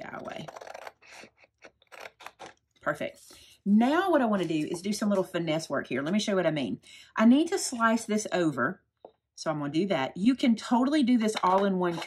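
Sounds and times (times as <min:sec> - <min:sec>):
scissors cutting cardstock: 0:00.0 - 0:02.5.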